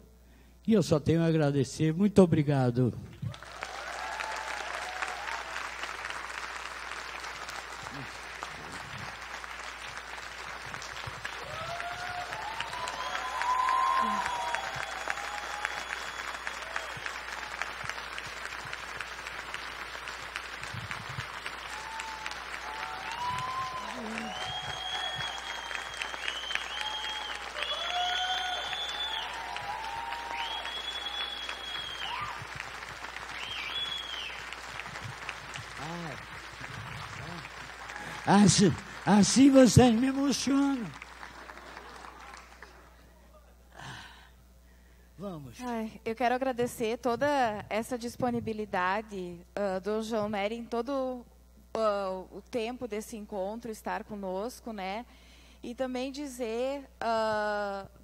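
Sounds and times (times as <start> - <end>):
audience applause: 3.3 - 43.1
people cheering: 3.3 - 43.4.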